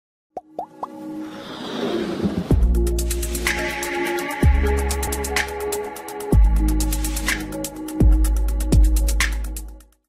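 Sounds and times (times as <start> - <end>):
musical rise: 0.7 - 6.3.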